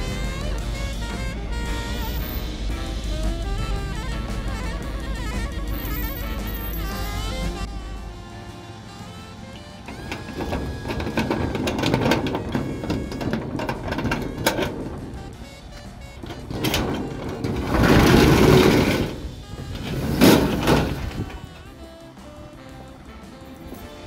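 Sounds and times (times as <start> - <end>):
steel roll-up door rattling: 9.9 - 22.0.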